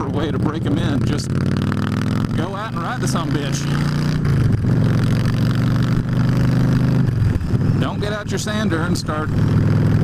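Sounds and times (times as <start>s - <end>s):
motorcycle engine cruising: 0.0s - 10.0s.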